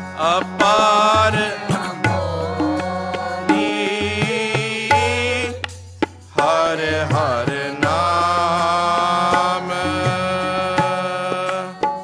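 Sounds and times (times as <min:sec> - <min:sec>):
harmonium chords: 0:00.0 - 0:12.0
tabla strokes: 0:00.0 - 0:12.0
voices singing devotional line: 0:00.0 - 0:12.0.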